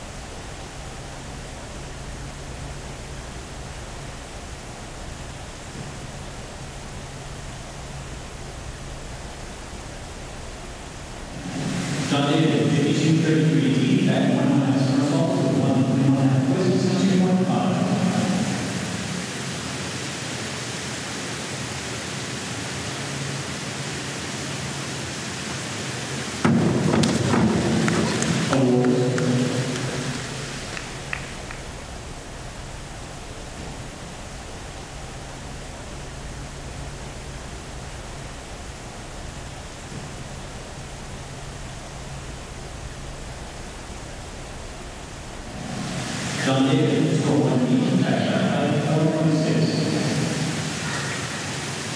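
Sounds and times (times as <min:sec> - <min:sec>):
ventilation hiss: 0:00.0 - 0:51.9
diver splashing into pool: 0:11.3 - 0:12.9, 0:26.4 - 0:31.7
people clapping: 0:26.9 - 0:31.9.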